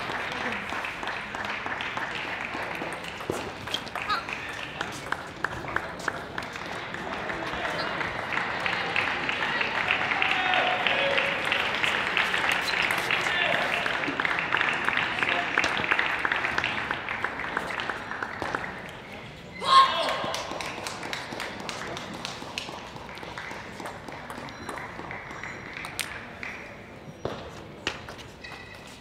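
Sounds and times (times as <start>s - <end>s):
people clapping: 0.0s - 27.2s
loud shout: 9.6s - 11.4s, 19.6s - 20.5s.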